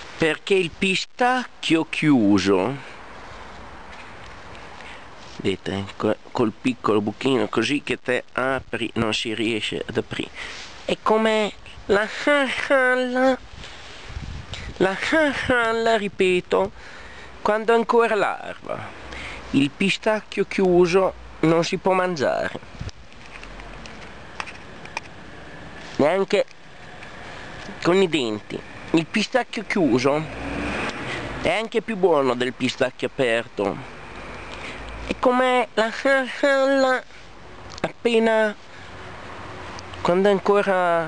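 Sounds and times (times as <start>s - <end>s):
steady background hiss: 0.0s - 41.0s
steady background noise: 0.0s - 41.0s.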